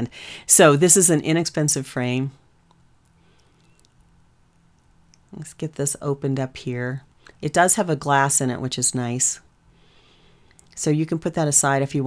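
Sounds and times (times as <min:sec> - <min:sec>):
low hum of room tone: 0:00.0 - 0:12.0
faint light ticks of handling: 0:02.6 - 0:05.3.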